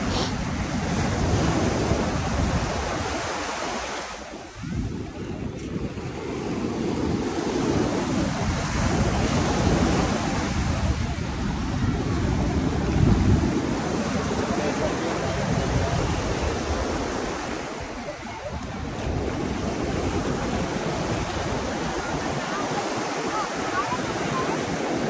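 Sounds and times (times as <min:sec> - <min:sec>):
small waves washing onto shore: 0:00.0 - 0:25.0
wind buffeting microphone: 0:00.0 - 0:25.0.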